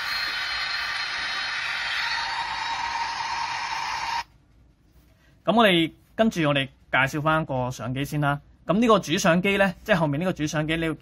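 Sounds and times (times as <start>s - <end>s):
jet engine hiss through phone speaker: 0.0s - 4.3s
steady whining tone: 0.0s - 4.3s.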